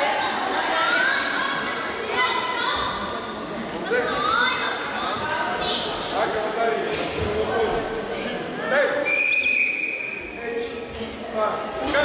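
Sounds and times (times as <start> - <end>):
referee's whistle blast: 9.1 - 10.2.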